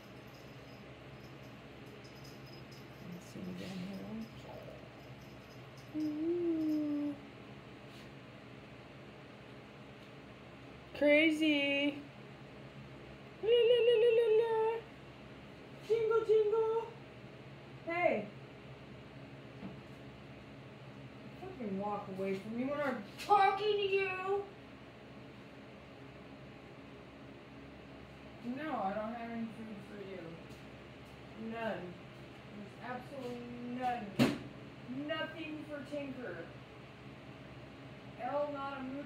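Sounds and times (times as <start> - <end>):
low room hum: 0.0 - 39.0.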